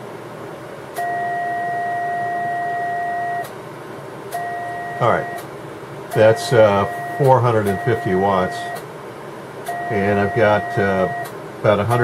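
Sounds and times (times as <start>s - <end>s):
steady background noise: 0.0s - 12.0s
two-tone test signal: 1.0s - 3.5s, 4.3s - 5.4s, 6.1s - 8.8s, 9.7s - 11.3s.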